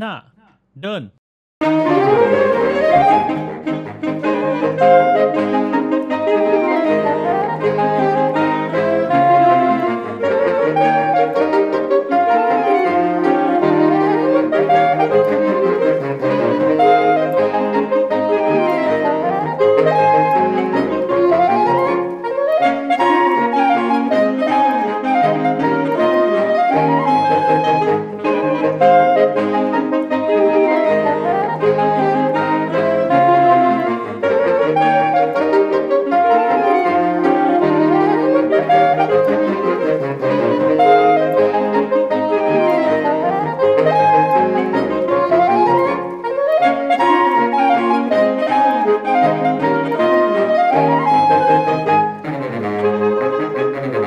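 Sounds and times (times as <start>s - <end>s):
saxophone ensemble playing march: 1.6s - 54.0s.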